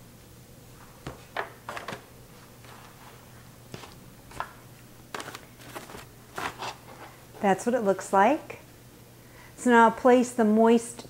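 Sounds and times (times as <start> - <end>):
low steady hum: 0.0 - 11.0
aluminium foil pans crinkling: 1.6 - 7.6.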